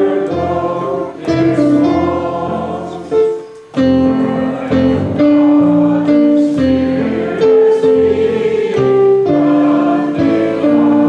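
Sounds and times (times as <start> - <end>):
electronic keyboard chords: 0.0 - 9.6
voices singing a hymn: 0.0 - 11.0.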